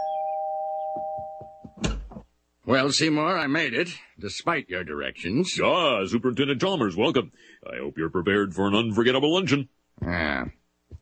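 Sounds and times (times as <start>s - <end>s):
two-tone doorbell chime: 0.0s - 1.8s
loud thump: 1.7s - 2.3s.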